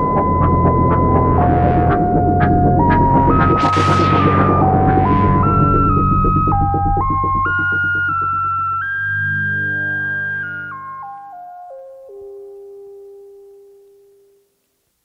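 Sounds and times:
low throbbing drone: 0:00.0 - 0:11.0
synth melody: 0:00.0 - 0:14.0.

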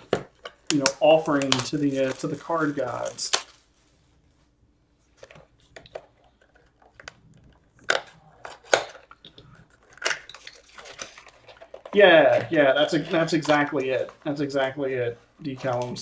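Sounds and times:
card pack wrapper crinkling: 0:00.3 - 0:03.8, 0:09.8 - 0:14.2.

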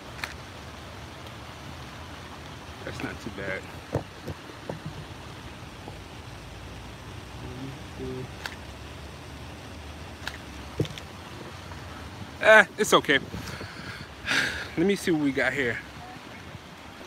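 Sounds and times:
city street background noise: 0:00.0 - 0:16.7.

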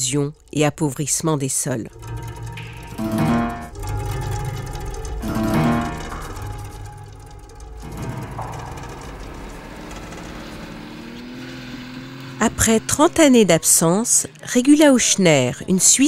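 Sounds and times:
acoustic guitar music: 0:01.0 - 0:16.0
vehicle engine driving past: 0:01.9 - 0:13.6.

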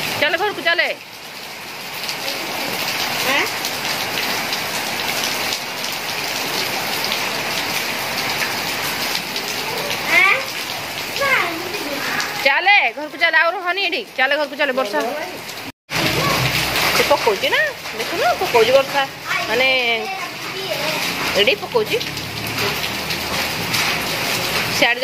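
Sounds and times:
rain on concrete and trees: 0:00.0 - 0:25.0.

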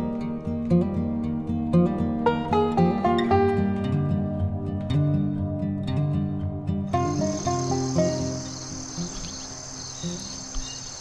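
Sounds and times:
gentle background music: 0:00.0 - 0:11.0
crickets chirping: 0:06.9 - 0:11.0.

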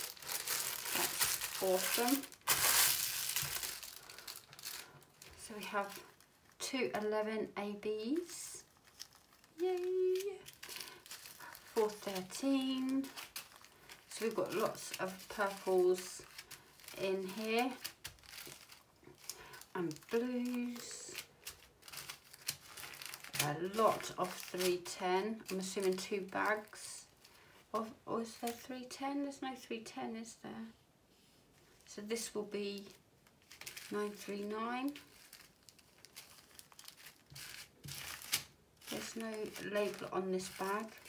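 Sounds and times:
plastic bag crinkling: 0:00.0 - 0:06.6, 0:08.0 - 0:27.4, 0:32.2 - 0:41.0.

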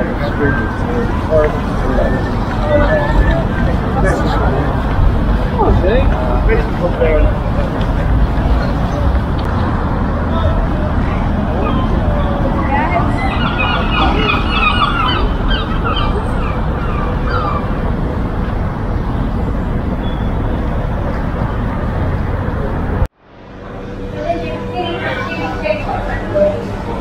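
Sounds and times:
passers-by talking: 0:00.0 - 0:27.0
traffic rumble: 0:00.0 - 0:27.0.

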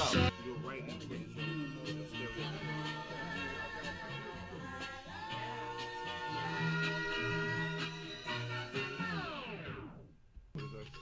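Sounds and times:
soul music tape stop: 0:00.0 - 0:11.0.

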